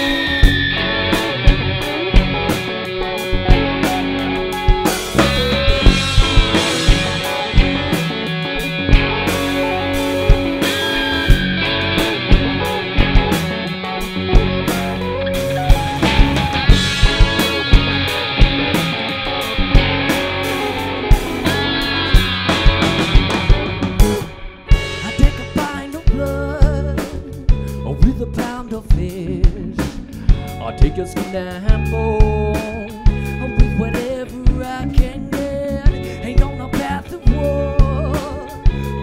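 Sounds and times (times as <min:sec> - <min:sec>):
drum kit: 0:00.0 - 0:39.0
electric guitars: 0:00.0 - 0:39.0.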